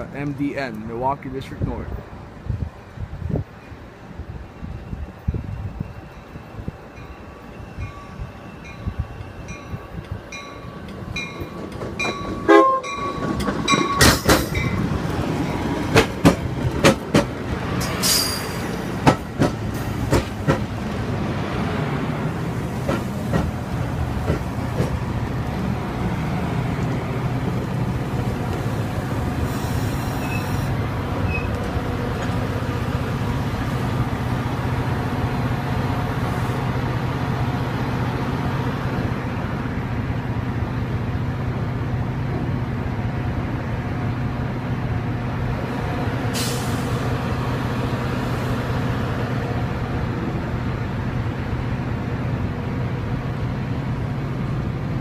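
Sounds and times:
train rumble with engine hum: 0.0 - 55.0
train bell ringing: 6.1 - 14.8
wheels clacking over rail joints: 10.4 - 21.2, 22.7 - 28.9
short train horn note: 12.5 - 13.0
high wheel squeal: 29.5 - 31.6.

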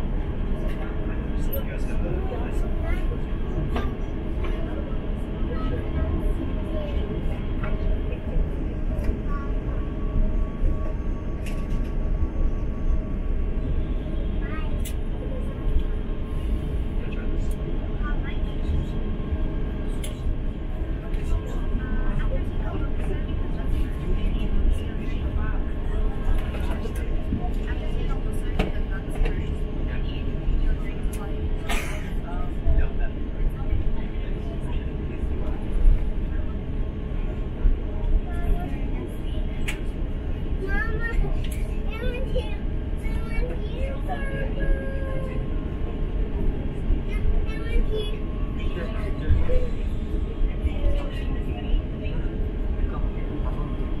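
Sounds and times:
airliner cabin rumble: 0.0 - 54.0
faint murmuring voices: 0.0 - 54.0.

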